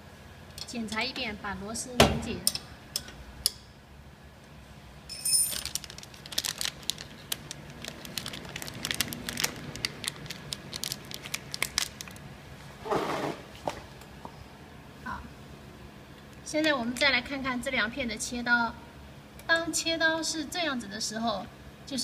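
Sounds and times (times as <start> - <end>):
plastic film crinkling: 5.5 - 12.3
plastic rustle: 5.5 - 12.3.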